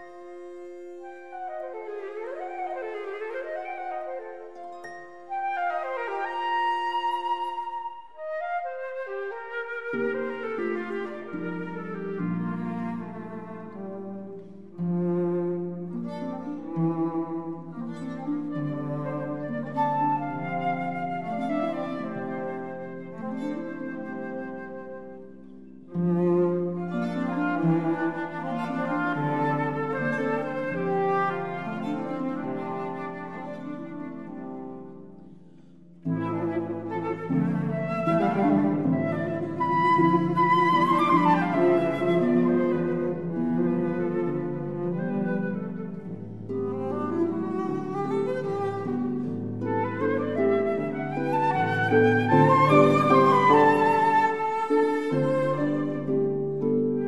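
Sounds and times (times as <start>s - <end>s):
flute viola and harp music: 0.0s - 57.0s.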